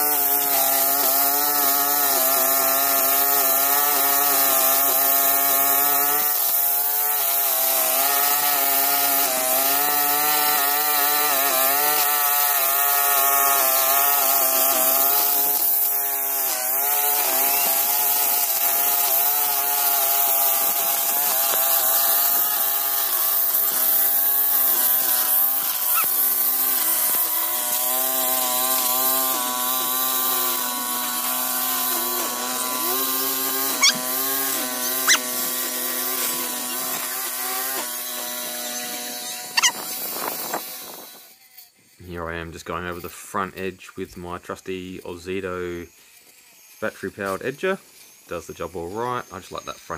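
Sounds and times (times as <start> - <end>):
string trimmer cutting grass: 0.0 - 49.9.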